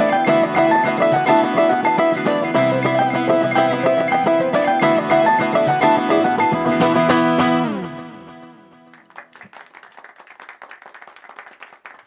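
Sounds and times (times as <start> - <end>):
electric guitar playing: 0.0 - 8.7.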